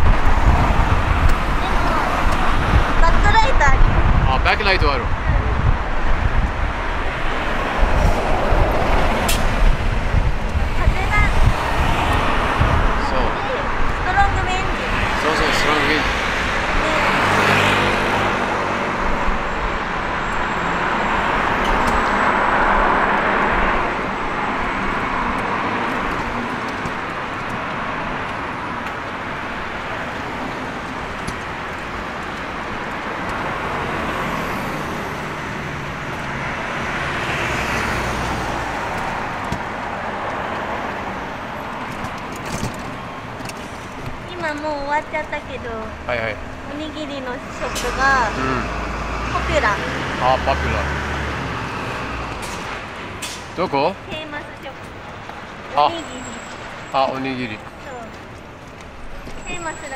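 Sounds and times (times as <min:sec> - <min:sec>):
motorcycle passing: 0:00.0 - 0:41.9, 0:43.9 - 0:54.8
cars passing: 0:00.0 - 0:59.9.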